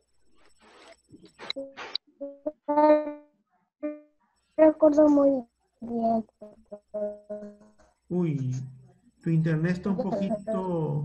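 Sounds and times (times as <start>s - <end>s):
child's voice over video call: 2.2s - 3.2s, 4.6s - 7.7s, 9.8s - 11.0s.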